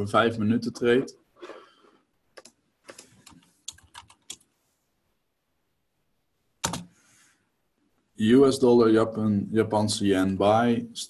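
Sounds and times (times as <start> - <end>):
computer keyboard typing: 2.4 - 4.5, 6.6 - 6.9.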